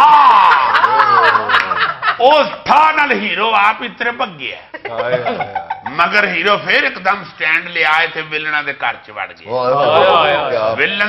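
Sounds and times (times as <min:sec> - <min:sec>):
men laughing loudly: 0:00.1 - 0:02.5, 0:04.8 - 0:06.0.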